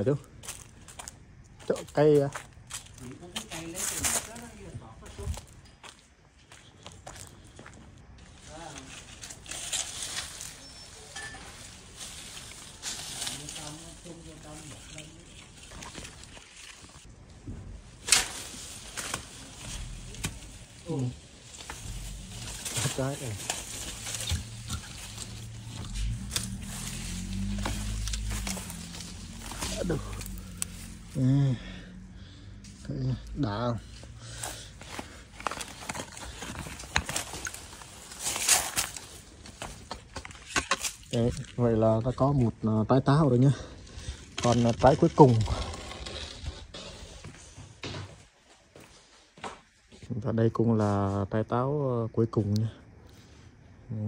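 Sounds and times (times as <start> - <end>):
branches and leaves rustling: 0.0 - 50.1.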